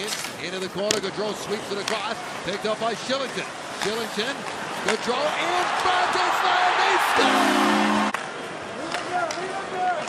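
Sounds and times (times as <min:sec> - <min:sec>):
hockey sticks clicking on puck: 0:01.8 - 0:02.0, 0:03.2 - 0:05.1, 0:08.8 - 0:10.0
crowd cheering: 0:04.7 - 0:08.4
crowd murmuring: 0:07.1 - 0:08.1.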